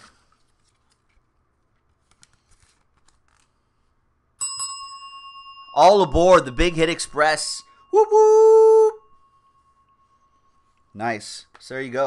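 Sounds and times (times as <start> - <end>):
bell ringing: 4.4 - 11.0.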